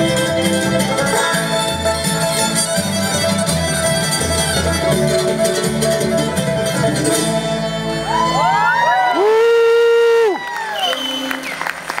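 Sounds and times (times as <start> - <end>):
bluegrass band playing: 0.0 - 10.2, 10.9 - 12.0
audience applause and cheering: 8.0 - 12.0.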